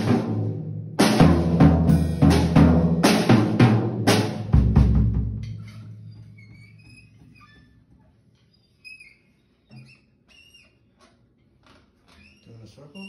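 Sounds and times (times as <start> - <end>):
drum kit ringing out: 0.0 - 5.8
faint high squeaks: 5.5 - 13.0.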